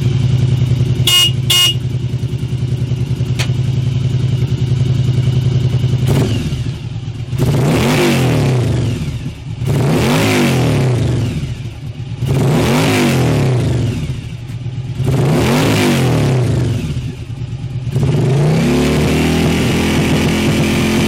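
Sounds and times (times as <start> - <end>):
motorcycle engine idling and revving: 0.0 - 21.0.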